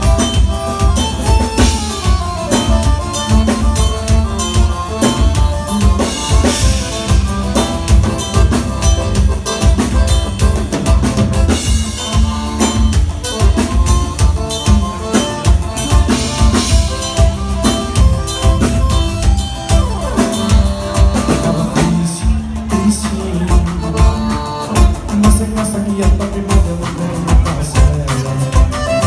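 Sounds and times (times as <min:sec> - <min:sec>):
drum kit kick and snare beat: 0:00.0 - 0:29.0
live band playing instrumental: 0:00.0 - 0:29.0.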